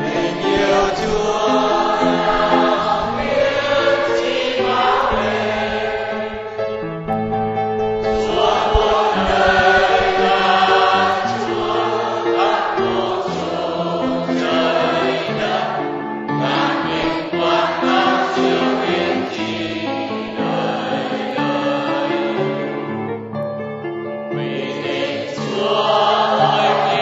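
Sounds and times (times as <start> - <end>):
choir singing a slow hymn: 0.0 - 6.9, 8.0 - 23.0, 24.4 - 27.0.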